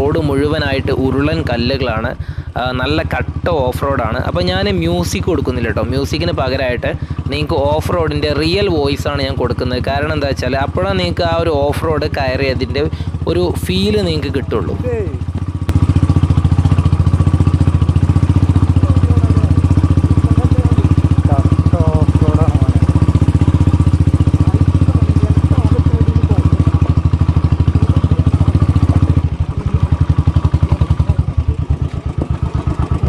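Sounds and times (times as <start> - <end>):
motorcycle engine running: 0.0 - 33.0.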